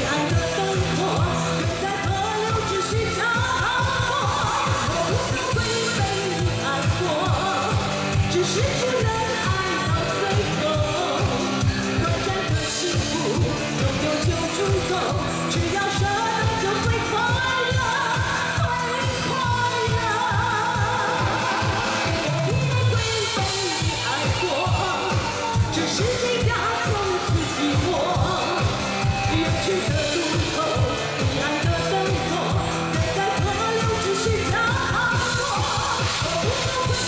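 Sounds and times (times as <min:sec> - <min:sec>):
band backing with drum beat: 0:00.0 - 0:37.0
woman singing pop song: 0:00.0 - 0:37.0.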